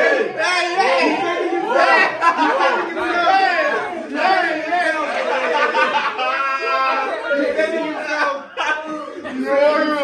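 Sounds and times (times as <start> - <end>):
people talking excitedly: 0.0 - 10.0.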